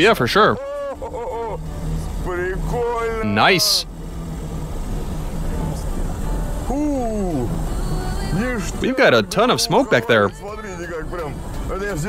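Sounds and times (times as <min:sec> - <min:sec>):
car engine and exhaust: 0:00.0 - 0:12.0.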